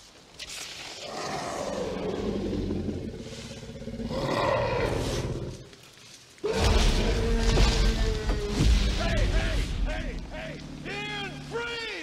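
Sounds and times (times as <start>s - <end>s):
dinosaur roars: 1.0s - 5.6s.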